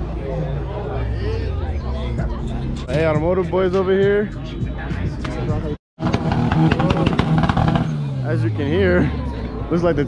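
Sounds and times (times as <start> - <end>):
car engine popping on rev limiter: 6.0 - 8.0.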